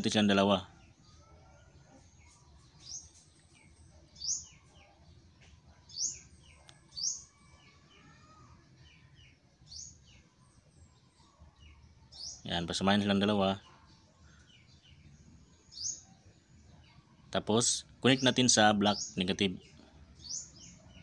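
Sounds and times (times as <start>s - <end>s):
fainter lower bird calls: 0.0s - 21.0s.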